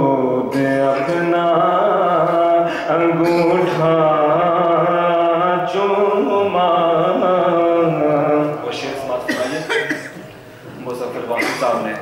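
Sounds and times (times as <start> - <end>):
man speaking into a microphone: 10.7 - 12.0.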